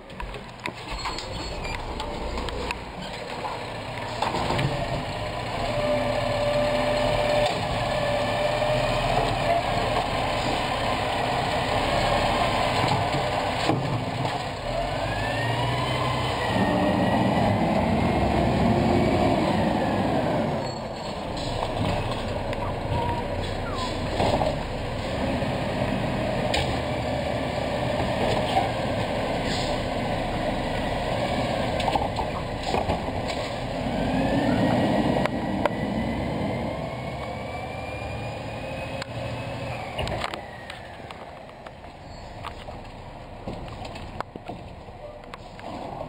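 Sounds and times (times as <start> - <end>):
garbage truck engine droning: 0.0 - 46.0
truck hydraulics: 21.2 - 25.8, 29.3 - 31.8
rising and falling whine: 34.1 - 41.2.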